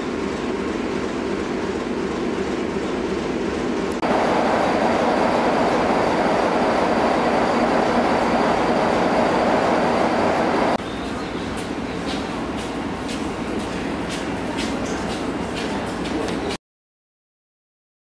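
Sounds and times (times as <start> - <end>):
steady high whine: 0.0 - 16.5
diesel locomotive engine idling: 0.0 - 16.6.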